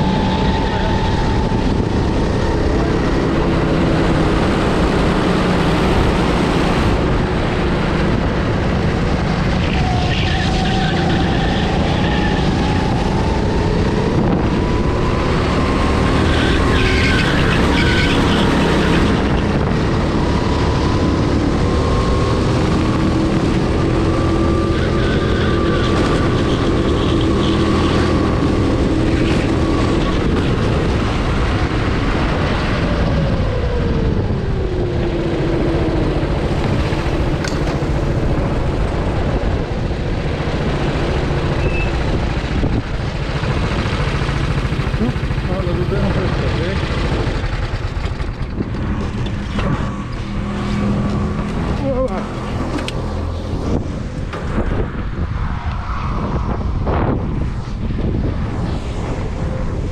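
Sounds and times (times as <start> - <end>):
kart engine running: 0.0 - 55.4.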